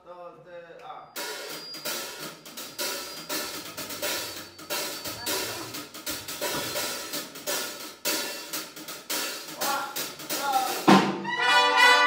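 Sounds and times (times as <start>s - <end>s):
drum kit steady beat: 1.2s - 12.0s.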